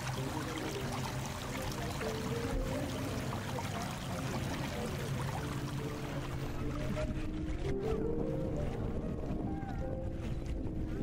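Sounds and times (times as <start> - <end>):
boat engine rumble: 0.0 - 11.0
music with held notes: 0.0 - 11.0.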